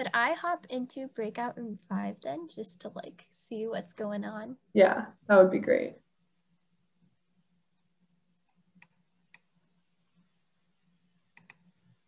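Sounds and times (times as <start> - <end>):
faint low hum: 0.0 - 12.0
faint computer clicks: 11.3 - 11.7.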